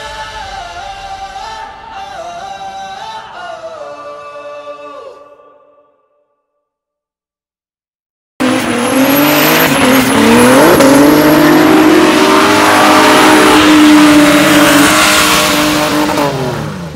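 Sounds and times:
car engine at high revs: 0:08.4 - 0:16.9.

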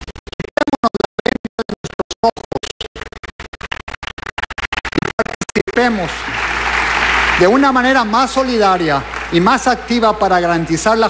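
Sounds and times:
man speaking with stuttering glitches: 0:04.6 - 0:06.2.

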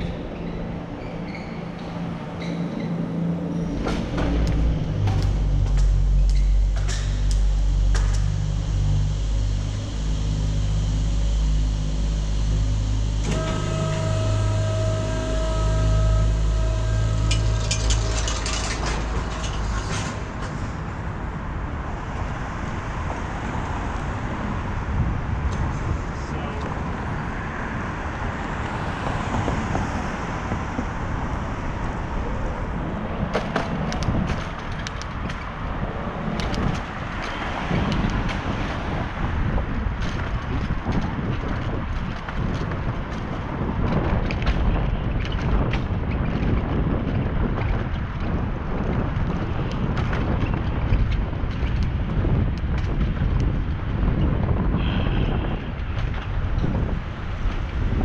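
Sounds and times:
machine whine: 0:00.0 - 0:21.1
low machine hum: 0:00.0 - 0:21.9
bicycle road noise: 0:00.0 - 0:58.0
wind rush: 0:02.0 - 0:58.0.

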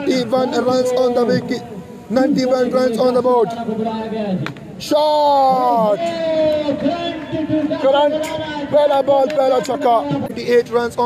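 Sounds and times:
male commentator speaking: 0:00.0 - 0:11.0.

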